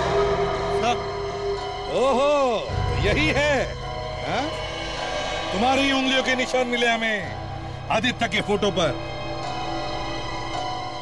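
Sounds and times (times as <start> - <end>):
man's voice: 0.0 - 4.7, 5.4 - 9.1
background music with low drone: 0.0 - 11.0.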